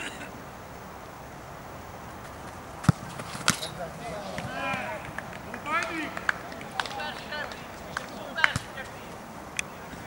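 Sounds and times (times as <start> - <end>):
outdoor voices: 0.0 - 10.0.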